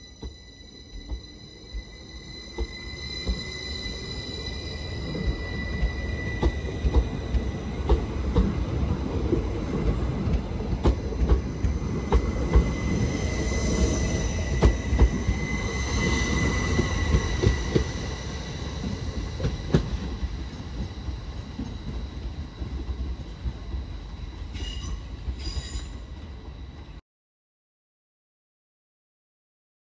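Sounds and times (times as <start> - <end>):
train high whine: 0.0 - 27.0
train rolling rumble: 0.0 - 27.0.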